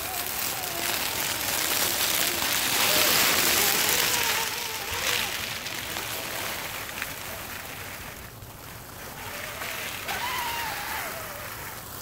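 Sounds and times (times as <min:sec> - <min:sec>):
dry leaves crunching under tyres: 0:00.0 - 0:12.0
whining electric motor and gears: 0:00.0 - 0:12.0.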